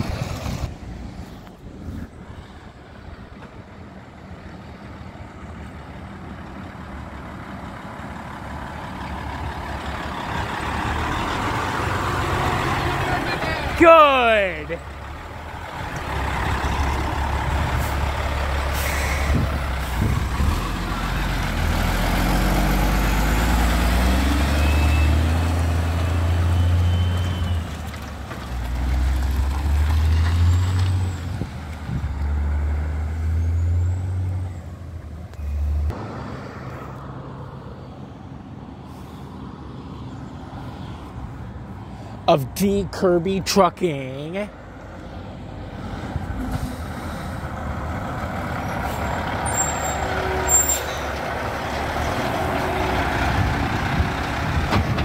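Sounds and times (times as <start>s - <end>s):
dump truck engine rumbling: 0.0s - 55.0s.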